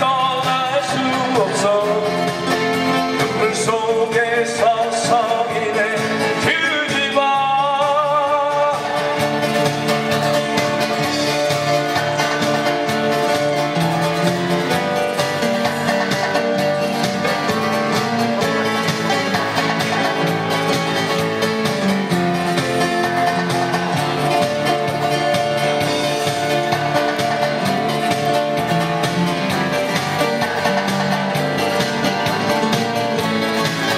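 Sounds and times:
person singing with vibrato: 0.0s - 10.4s
acoustic guitar strumming: 0.0s - 33.9s.

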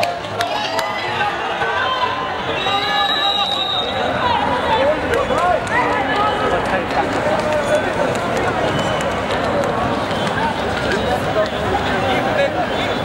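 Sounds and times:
people calling and talking: 0.0s - 13.0s.

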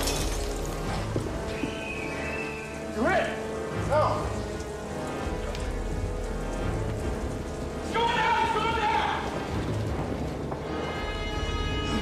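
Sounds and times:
film score music: 0.0s - 12.0s
heavy rain: 0.0s - 12.0s.

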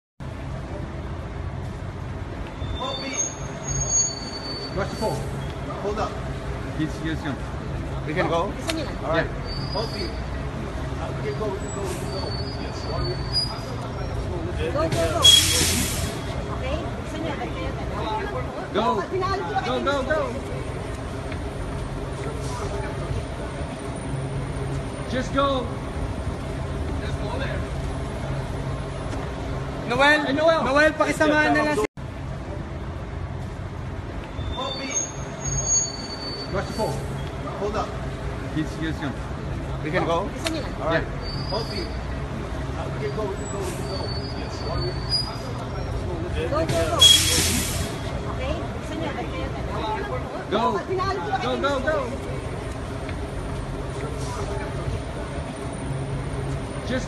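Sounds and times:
bus engine idling: 0.2s - 34.8s, 35.4s - 57.0s.

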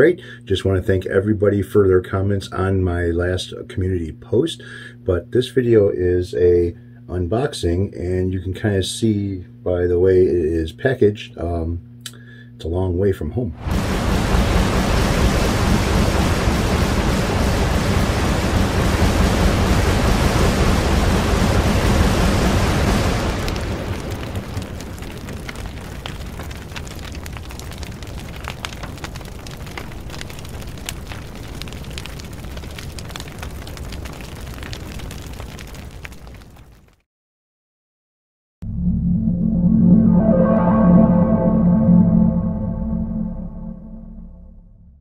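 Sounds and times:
thunder crackling rumble: 13.6s - 36.6s
flames crackling and popping: 13.6s - 37.0s.

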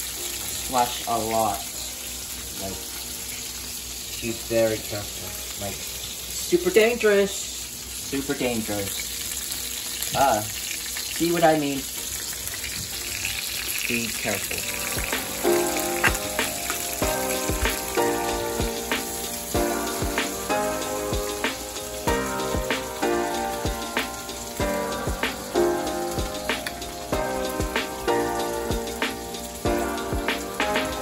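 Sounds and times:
meatballs sizzling in a skillet: 0.0s - 31.0s
background music with steady beat: 14.6s - 31.0s.

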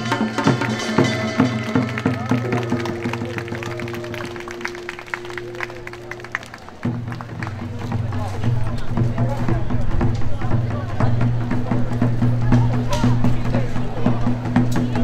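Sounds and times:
gong strokes: 0.0s - 7.1s
light drum strokes: 0.0s - 15.0s
long held note: 1.0s - 6.9s.

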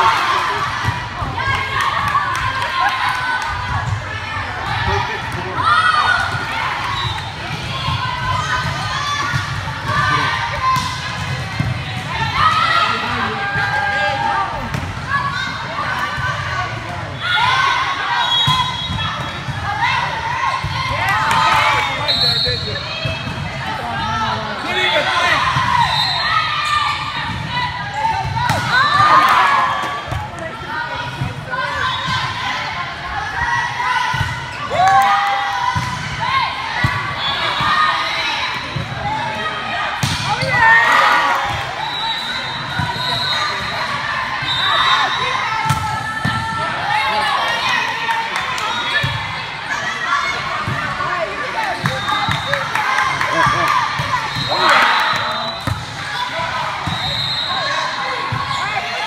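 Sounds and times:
voices calling out in a hall: 0.0s - 59.0s.

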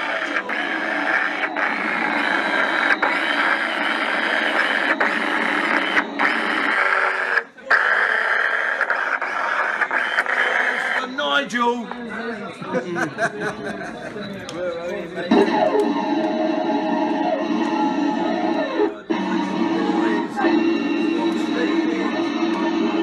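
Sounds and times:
people talking: 0.0s - 7.8s, 9.8s - 16.0s, 16.9s - 23.0s
harsh noise music: 0.0s - 11.0s, 15.3s - 23.0s
people laughing: 12.2s - 15.8s.

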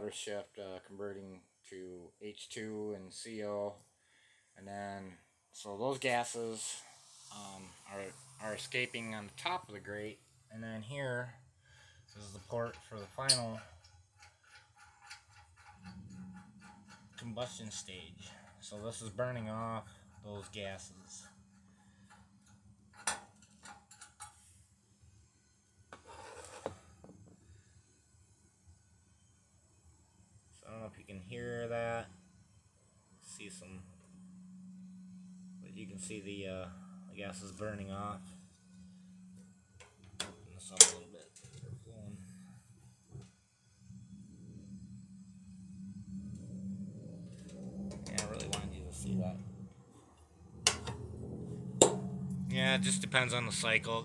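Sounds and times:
low steady stove hum: 0.0s - 54.0s
metal cap scraping and clicking: 12.1s - 17.6s.

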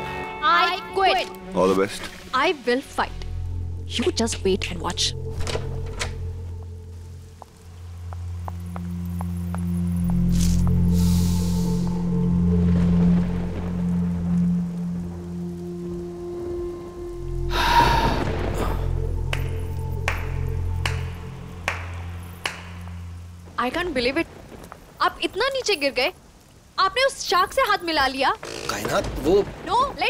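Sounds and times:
low sustained drone: 2.8s - 23.5s
sharp handclaps: 19.3s - 22.9s.

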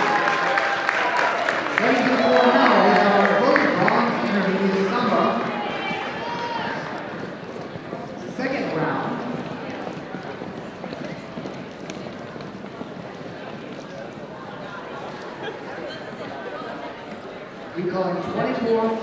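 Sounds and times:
murmur of voices: 0.0s - 19.0s.

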